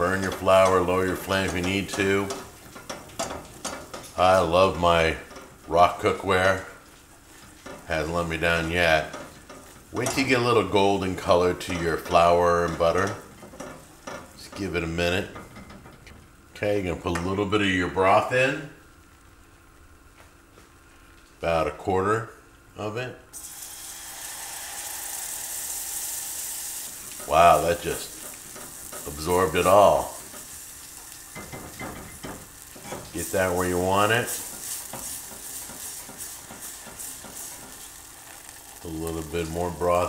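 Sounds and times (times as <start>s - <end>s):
roux sizzling in a saucepan: 0.0s - 15.4s, 23.4s - 40.0s
whisk stirring in saucepan: 31.4s - 38.9s.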